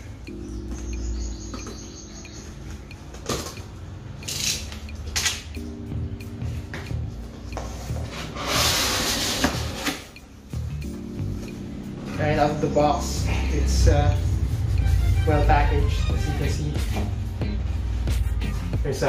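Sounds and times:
background music: 0.0 - 19.0
loud cardboard scrape: 8.2 - 10.0.

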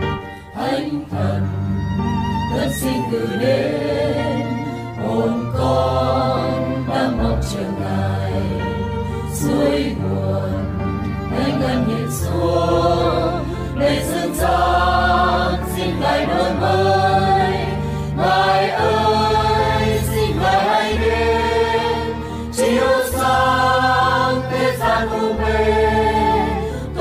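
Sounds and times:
choir singing a hymn: 0.0 - 27.0.

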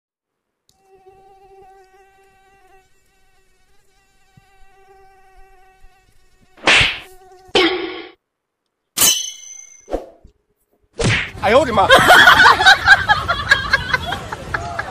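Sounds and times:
mosquito buzzing whine: 0.7 - 8.2.

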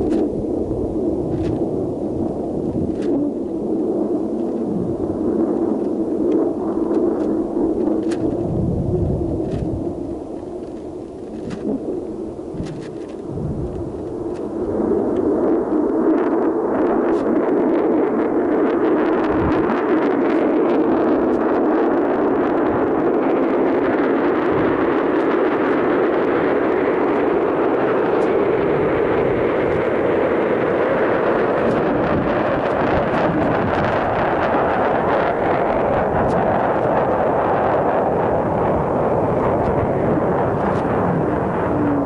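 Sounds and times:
wind rushing over microphone: 0.0 - 42.0.

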